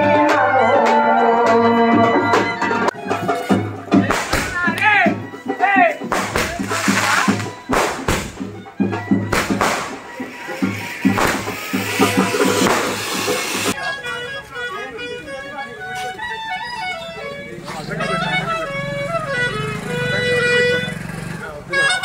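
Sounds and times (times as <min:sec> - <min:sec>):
drumming: 0:00.0 - 0:13.8
crowd voices: 0:00.0 - 0:22.0
festival procession music: 0:00.0 - 0:22.0
firecrackers banging and crackling: 0:03.2 - 0:05.3, 0:06.0 - 0:13.8.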